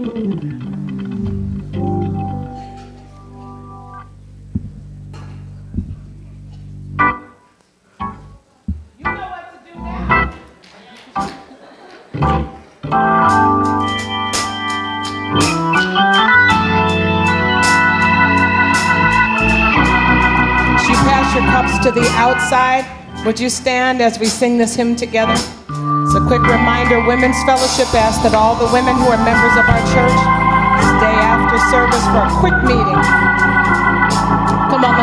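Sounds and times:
organ playing: 0.0 - 10.5, 11.2 - 35.0.

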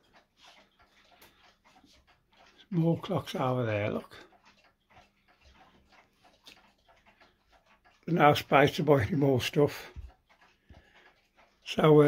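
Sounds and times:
faint wall clocks ticking: 0.0 - 12.0.

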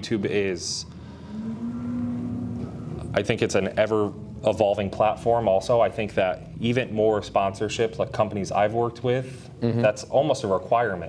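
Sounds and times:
man humming in hesitation: 9.6 - 9.9.

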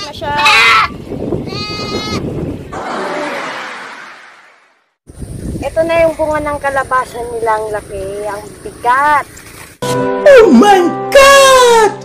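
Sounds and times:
goat bleating: 0.0 - 2.3.

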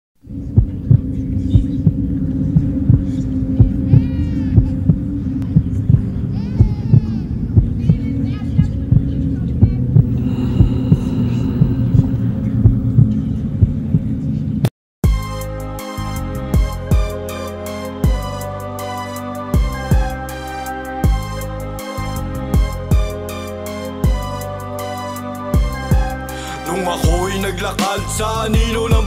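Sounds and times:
low drone: 0.2 - 6.4, 9.2 - 14.6
heartbeat-like thumps: 0.3 - 8.1, 8.8 - 14.7
wavering high sweep: 10.0 - 14.2.

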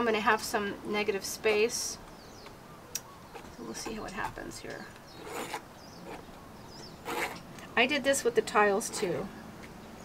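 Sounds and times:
faint bird chirps: 2.0 - 7.8.

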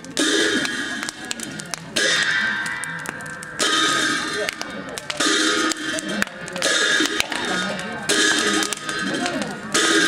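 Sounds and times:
steady drumming: 0.1 - 10.0
ringing cymbal clashes: 2.0 - 4.6.

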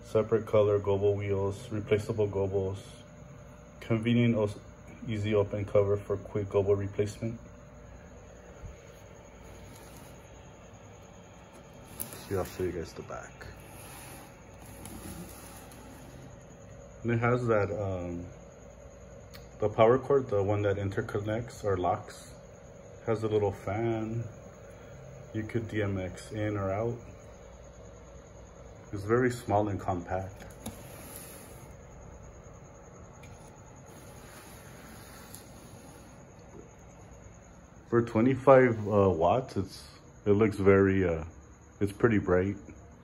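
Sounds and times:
faint low hum with soft hiss: 0.0 - 43.0
small cooling fan whirring: 0.0 - 43.0.

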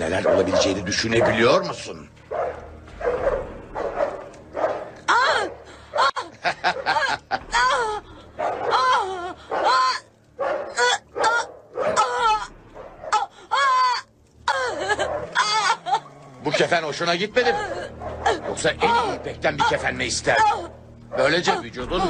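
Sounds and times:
dog barking and whining: 0.0 - 6.1, 8.4 - 13.3.

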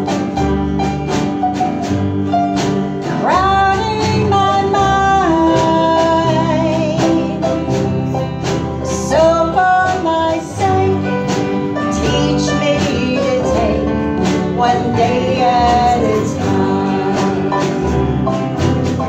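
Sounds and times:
country band playing slow song: 0.0 - 19.0.

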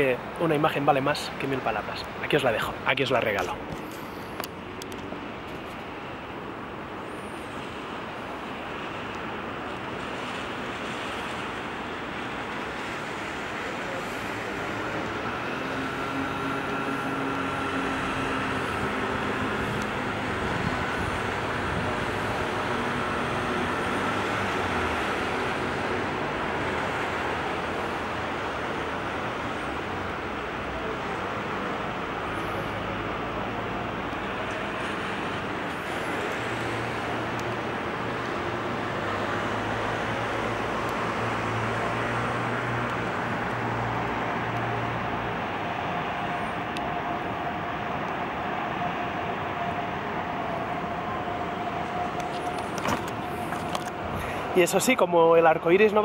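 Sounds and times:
city traffic: 0.0 - 56.0
low engine hum: 50.3 - 54.6.

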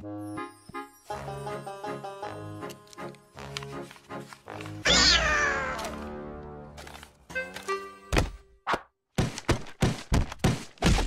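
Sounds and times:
light plucked music: 0.0 - 8.2
loud cry falling in pitch: 4.9 - 5.9.

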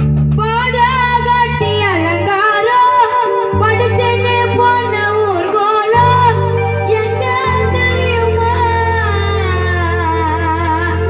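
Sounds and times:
young man singing: 0.4 - 11.0
sustained low accompaniment notes: 3.4 - 11.0.

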